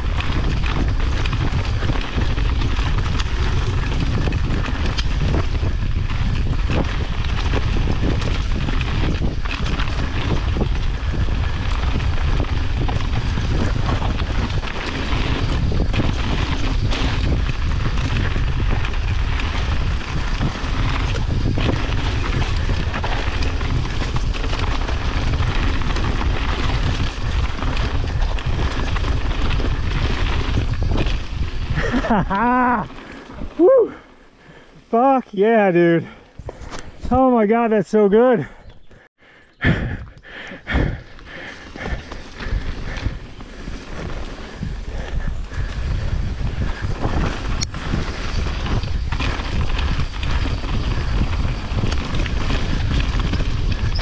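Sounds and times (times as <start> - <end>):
bike knocking and rattling: 0.0 - 34.9, 39.7 - 54.0
wind on microphone: 0.0 - 34.9, 38.5 - 54.0
bike tyres rolling on rocky trail: 0.0 - 54.0.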